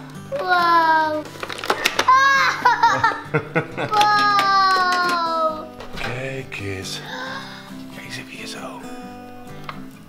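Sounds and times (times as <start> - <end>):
toddler exclaiming: 0.3 - 1.3, 2.1 - 2.8, 3.9 - 5.7.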